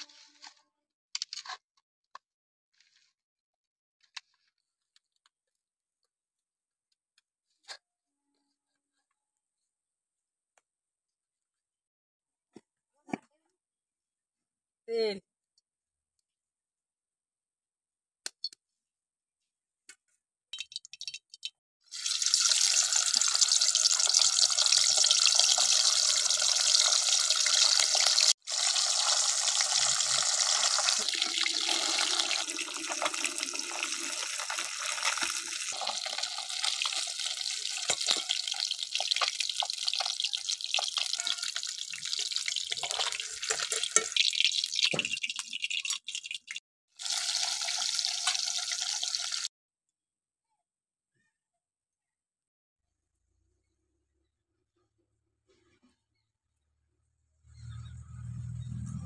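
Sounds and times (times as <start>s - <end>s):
hot oil sizzling with frying fish: 21.9s - 49.5s.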